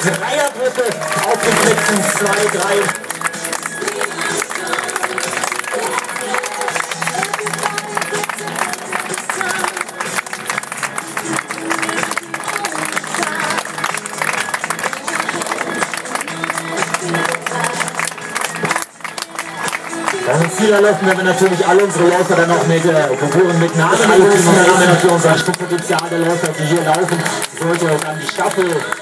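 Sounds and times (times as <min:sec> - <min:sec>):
background music: 0:00.0 - 0:29.0
spectators clapping: 0:00.0 - 0:29.0.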